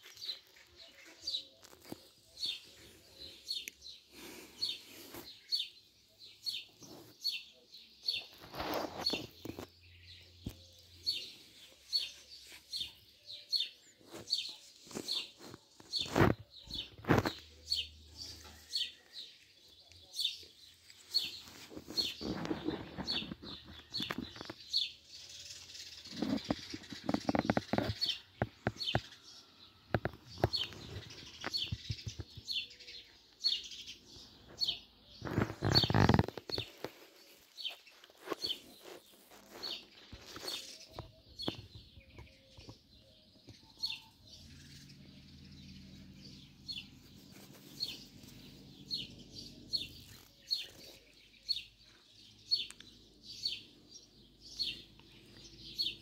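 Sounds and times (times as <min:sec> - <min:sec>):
small bird chirping: 0:00.0 - 0:56.0.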